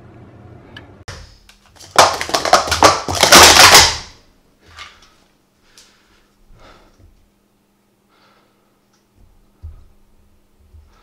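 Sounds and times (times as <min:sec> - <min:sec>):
plastic cups clattering: 0:01.7 - 0:04.2.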